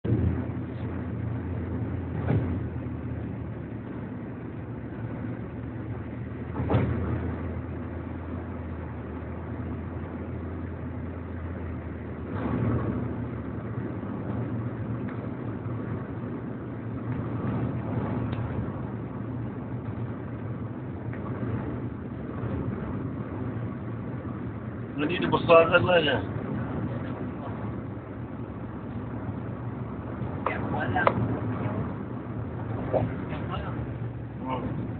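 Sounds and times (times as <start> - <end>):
vehicle engine hum and road noise: 0.0 - 34.9.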